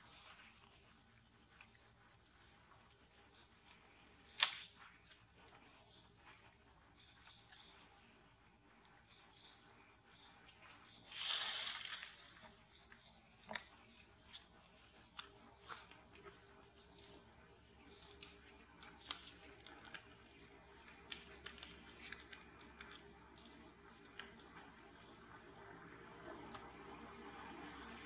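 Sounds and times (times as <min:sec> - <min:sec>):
soft scattered clicks: 0:00.7 - 0:10.8
monkeys rustling in tree: 0:10.4 - 0:28.0.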